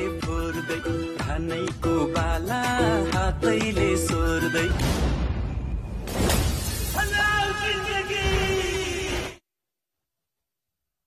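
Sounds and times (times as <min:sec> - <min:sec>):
glass shattering: 0:06.0 - 0:07.4.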